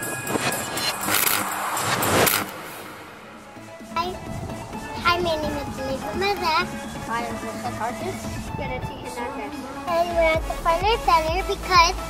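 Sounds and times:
whoosh sound effect: 0.0 - 5.8.

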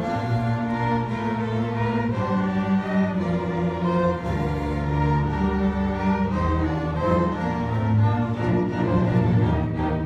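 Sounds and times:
orchestra bowed strings playing: 0.0 - 10.0.

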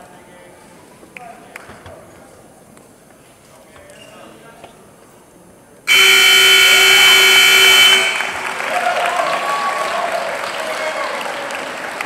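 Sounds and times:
scoreboard buzzer: 5.9 - 8.5
crowd applause and cheering: 7.0 - 12.0.

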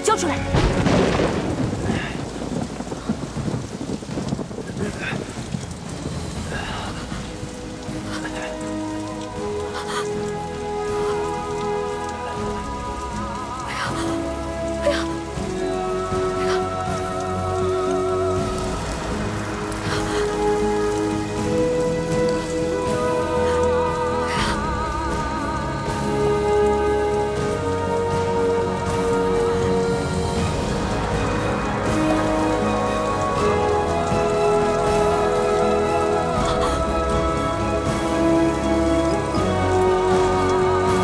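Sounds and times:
heavy rain falling: 0.0 - 41.0
slow background music: 0.0 - 41.0.

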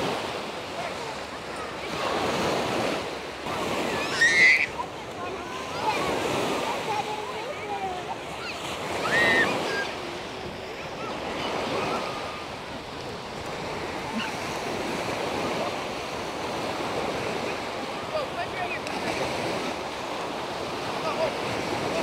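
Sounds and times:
waves washing on sand: 0.0 - 22.0.

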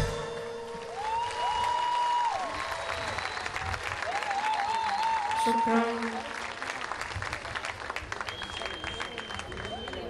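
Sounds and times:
audience applause: 0.2 - 10.0.

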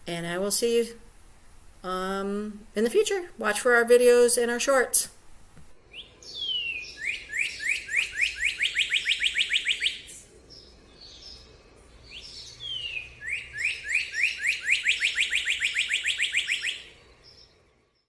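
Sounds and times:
bird singing whistled song: 5.9 - 17.5.

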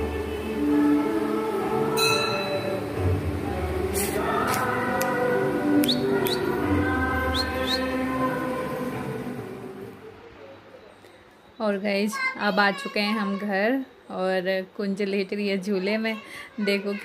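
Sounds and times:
voices singing a devotional song: 0.0 - 10.0.

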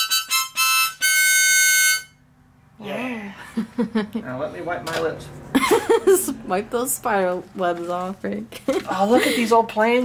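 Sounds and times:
harmonica notes: 0.0 - 2.3.

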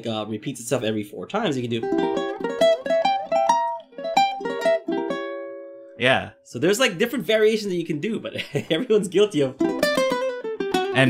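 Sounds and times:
ukulele picking rising notes: 1.6 - 7.3, 9.0 - 11.0.

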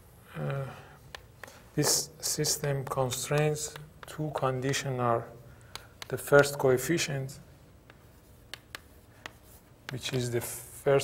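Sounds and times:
chalk tapping on chalkboard: 2.7 - 5.0, 7.8 - 10.2.

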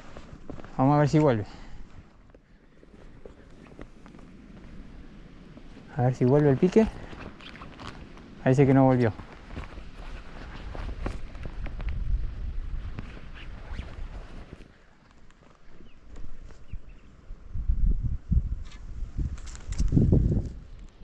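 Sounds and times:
steps on dry reeds and sand: 0.0 - 16.8
wind buffeting microphone: 3.8 - 14.4, 15.8 - 20.9.

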